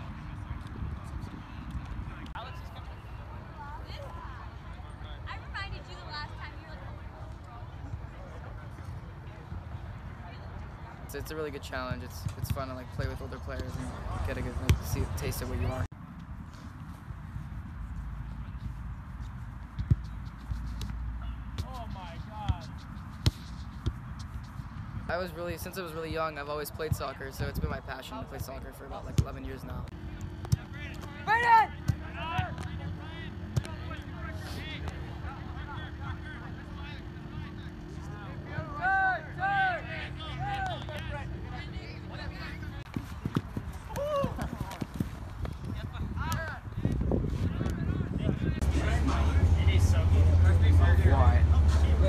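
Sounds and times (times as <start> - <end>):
soccer balls kicked: 11.8 - 25.2, 29.0 - 35.1, 41.8 - 48.6
steady low hum: 29.8 - 52.0
players calling out: 30.0 - 46.6
running feet: 42.4 - 48.5.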